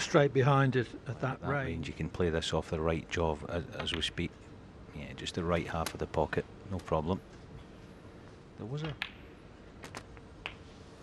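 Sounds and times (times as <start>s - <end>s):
snooker balls clicking: 8.8s - 10.7s.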